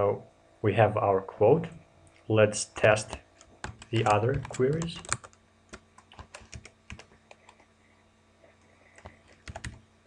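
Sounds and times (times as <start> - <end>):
computer keyboard typing: 2.9 - 7.7, 8.9 - 9.8.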